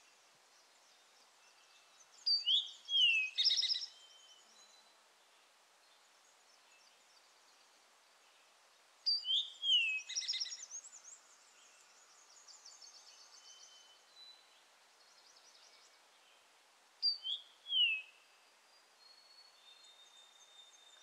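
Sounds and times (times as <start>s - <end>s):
songbirds singing: 0.0s - 21.0s
steady forest hiss: 0.0s - 21.0s.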